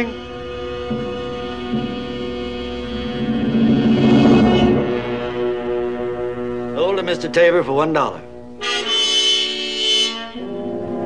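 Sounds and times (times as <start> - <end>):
orchestral brass chord: 0.0 - 11.0.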